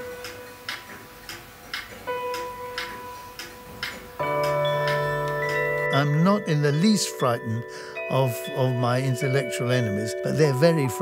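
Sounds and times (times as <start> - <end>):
soft music: 0.0 - 11.0
clock ticking: 0.2 - 11.0
sustained chord: 2.1 - 11.0.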